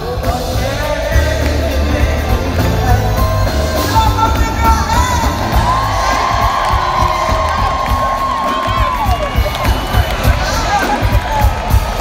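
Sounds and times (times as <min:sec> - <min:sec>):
live band music: 0:00.0 - 0:12.0
audience cheering and whooping: 0:03.8 - 0:12.0.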